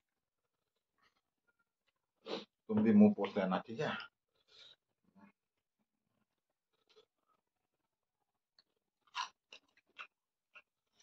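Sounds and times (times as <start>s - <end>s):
person chewing crunchy food: 8.5s - 11.0s.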